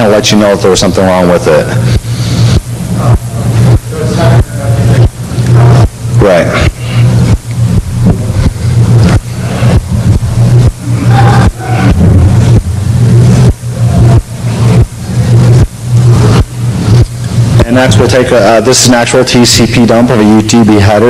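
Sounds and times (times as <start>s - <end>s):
choppy low electrical hum: 0.0s - 21.0s.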